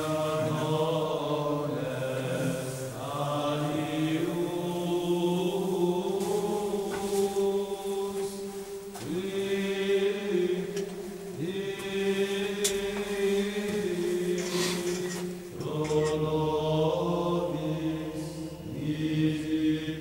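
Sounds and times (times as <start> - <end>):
voices chanting low notes: 0.0 - 20.0.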